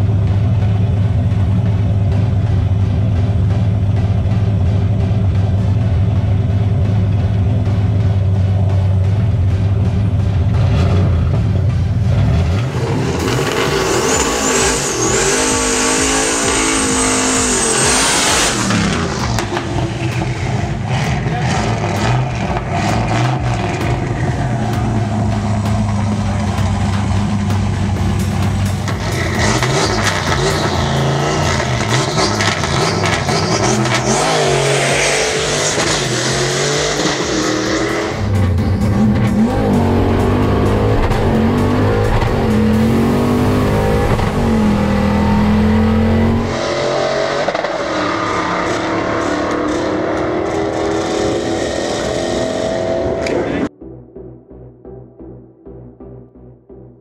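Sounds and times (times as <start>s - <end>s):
car engine revving: 0.0s - 53.7s.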